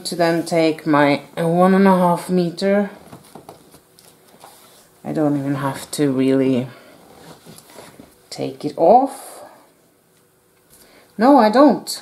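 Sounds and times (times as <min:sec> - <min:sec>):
quiet rustling: 0:06.7 - 0:08.2.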